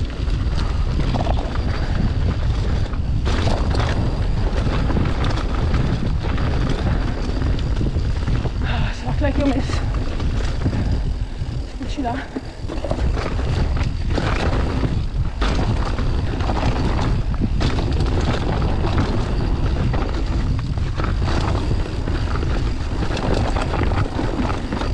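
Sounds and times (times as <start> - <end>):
bike rattling and knocking: 0.0 - 24.9
wind rumble on microphone: 0.0 - 24.9
tyres rolling over stones: 11.9 - 24.9.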